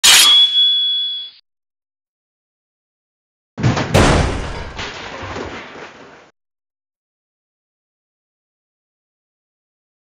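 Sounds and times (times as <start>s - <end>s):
sword strike metallic clang: 0.0s - 1.3s.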